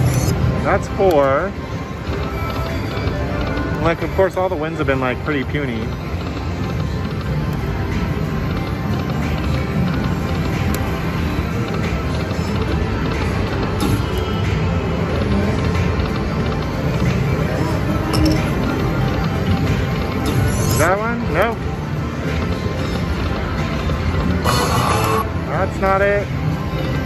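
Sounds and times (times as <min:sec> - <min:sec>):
slot machine music and spins: 0:00.0 - 0:27.0.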